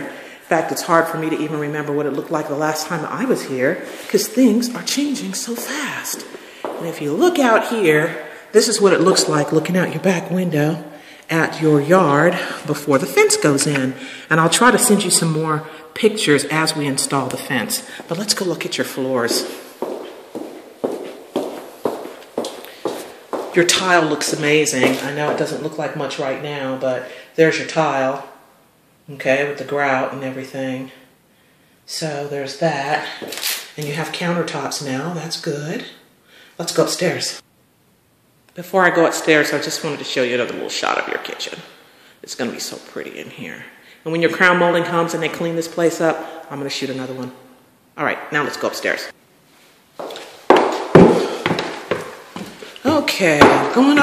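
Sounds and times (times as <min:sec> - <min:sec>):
footsteps on hard floor: 0:05.6 - 0:07.1, 0:19.3 - 0:25.5, 0:50.0 - 0:54.0.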